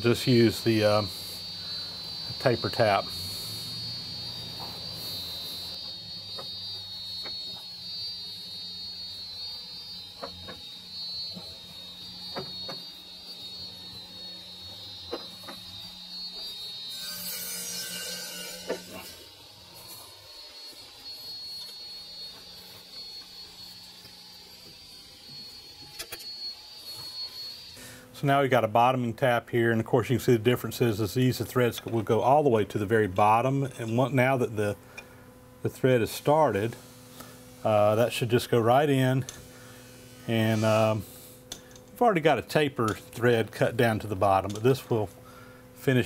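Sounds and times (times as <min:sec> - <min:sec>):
high-pitched electrical hum: 0:00.0 - 0:46.0.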